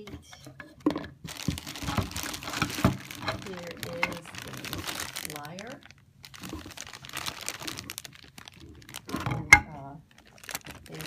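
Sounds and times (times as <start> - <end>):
plastic bags crinkling: 1.2 - 11.0.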